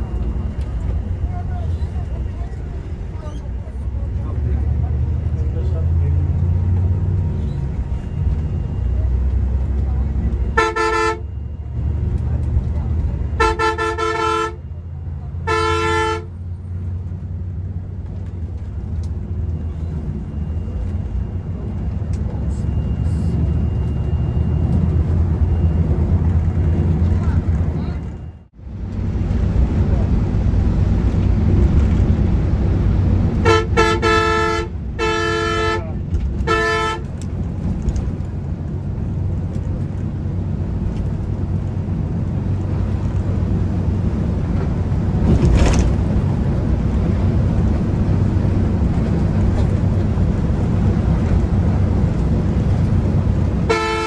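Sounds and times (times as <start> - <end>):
coach engine running: 0.0 - 54.0
horn honking: 10.3 - 11.5, 13.2 - 14.8, 15.4 - 16.5, 33.4 - 37.2, 53.6 - 54.0.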